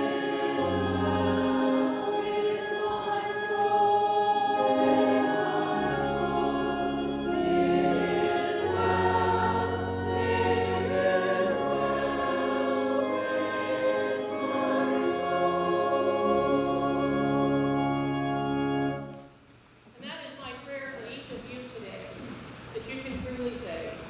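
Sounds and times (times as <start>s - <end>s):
congregation singing a hymn: 0.0s - 19.1s
organ chords: 0.0s - 19.4s.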